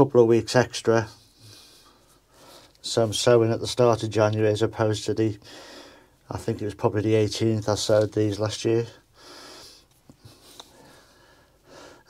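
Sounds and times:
man inhaling through nose: 5.4 - 6.2, 9.1 - 12.0.

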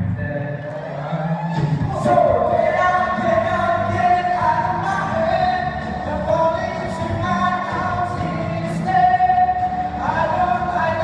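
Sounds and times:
backing music: 0.0 - 11.0
group singing into microphones: 0.8 - 11.0.

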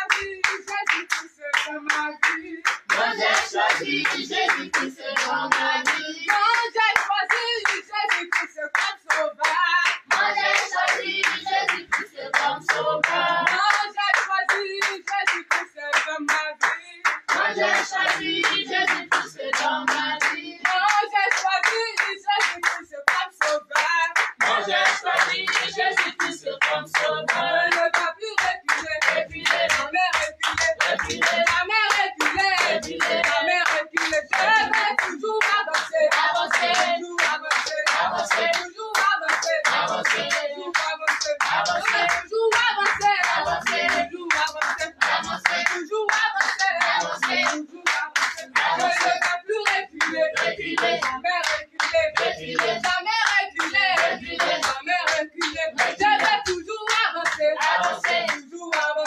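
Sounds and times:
group singing: 0.0 - 59.0
hands clapping in rhythm: 0.0 - 59.0.

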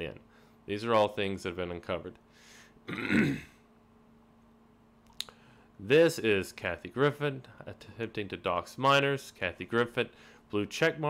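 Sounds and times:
faint steady hum: 0.0 - 11.0
man clearing his throat: 2.9 - 3.6.

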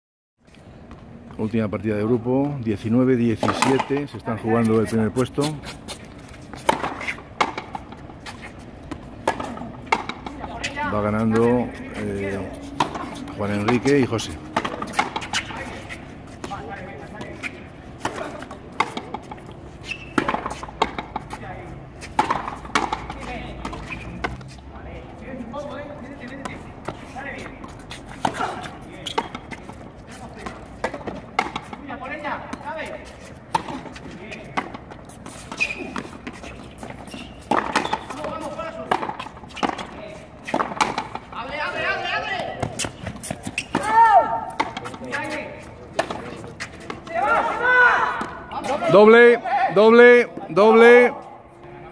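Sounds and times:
voices calling out: 3.4 - 51.9.

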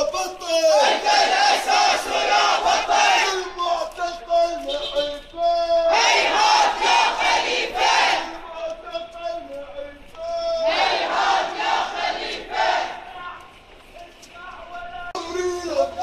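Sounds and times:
voices holding drawn-out notes: 0.4 - 16.0
crowd chanting slogan: 0.8 - 3.6, 5.8 - 8.8, 10.3 - 13.6.

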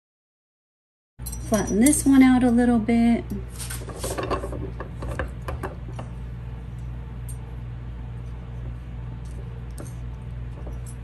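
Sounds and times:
steady low hum: 1.2 - 11.0.

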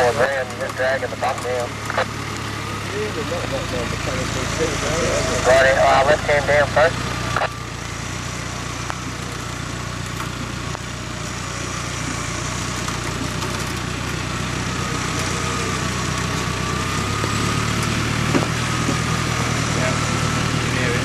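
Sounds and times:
engine running under load: 0.0 - 21.0
wheels spinning in mud: 0.0 - 21.0.

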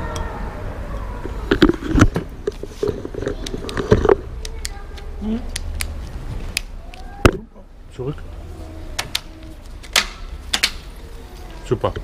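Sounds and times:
clicks and knocks of bike parts: 9.0 - 11.0.

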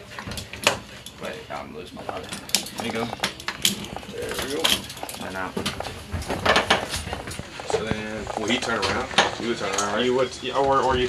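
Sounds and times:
metal clinks and clanks: 2.0 - 9.9.

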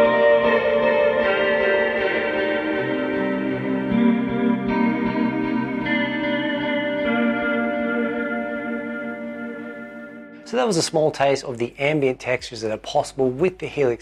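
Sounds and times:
ambient electric guitar notes: 0.0 - 10.6.

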